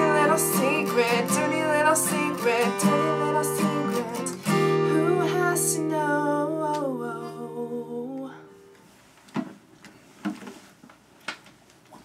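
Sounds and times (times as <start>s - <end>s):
acoustic guitar chord ringing: 0.0s - 8.8s.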